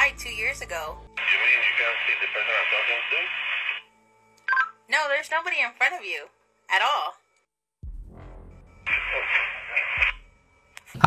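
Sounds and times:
walkie-talkie static: 1.2s - 3.8s, 8.9s - 10.2s.

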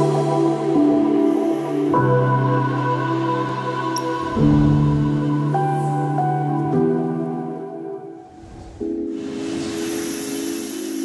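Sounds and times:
ambient music low chord: 0.0s - 11.0s
hissing transition effect: 8.3s - 11.0s.

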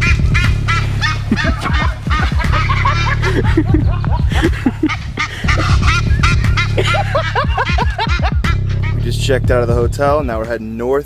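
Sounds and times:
geese honking: 0.0s - 9.4s
background music with bass: 0.0s - 11.0s.

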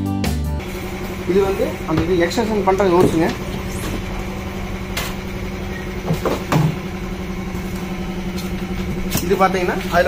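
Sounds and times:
low mechanical hum: 0.6s - 10.0s.

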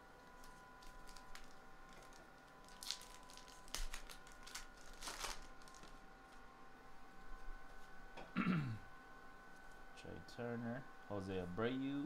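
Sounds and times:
wrapper crinkling: 0.3s - 6.0s.

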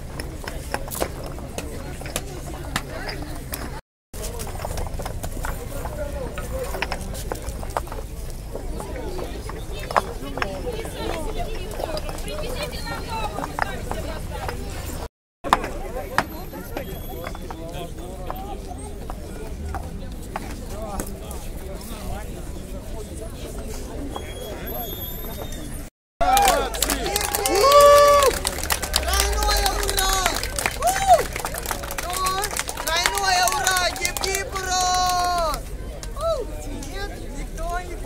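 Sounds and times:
concrete paving blocks clacking: 0.0s - 18.4s
crowd talking: 0.0s - 38.0s.

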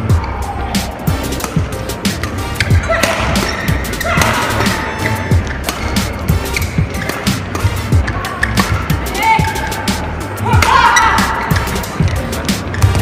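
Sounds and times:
music: 0.0s - 13.0s
rackets striking shuttlecock: 1.3s - 10.0s, 10.6s - 13.0s
shoes squeaking on court: 1.4s - 9.6s, 11.0s - 13.0s.

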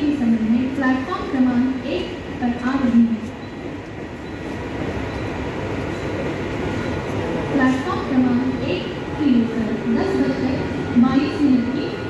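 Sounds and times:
electric train rumbling: 0.0s - 12.0s.

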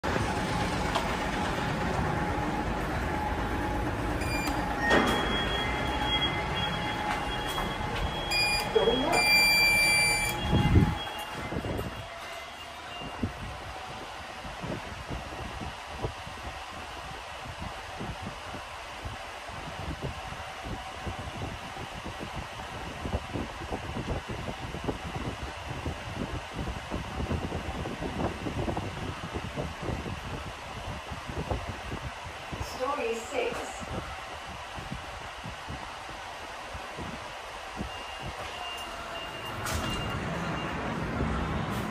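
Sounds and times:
lift car running: 0.0s - 14.5s, 37.2s - 41.9s
lift doors thudding shut: 4.2s - 10.6s
short electronic beeps: 4.2s - 11.2s.

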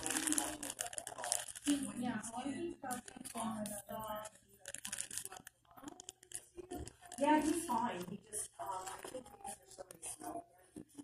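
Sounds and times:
crackly crinkling and tearing: 0.0s - 10.4s
person speaking: 0.0s - 11.0s.

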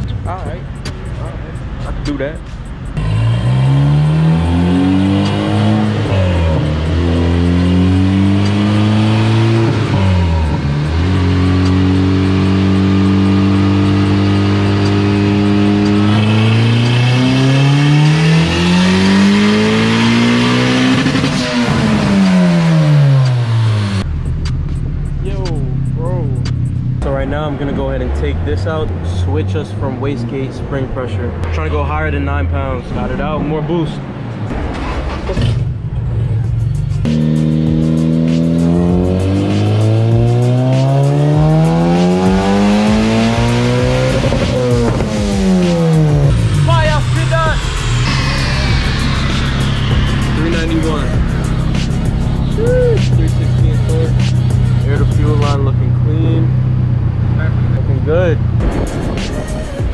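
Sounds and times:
turbocharged engine revving: 0.0s - 59.9s.

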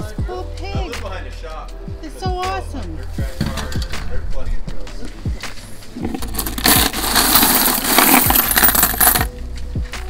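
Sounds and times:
coins clinking in bucket: 6.0s - 9.3s.

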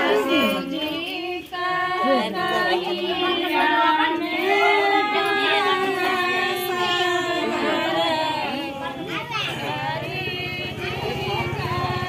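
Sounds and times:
women singing folk song: 0.0s - 12.0s.

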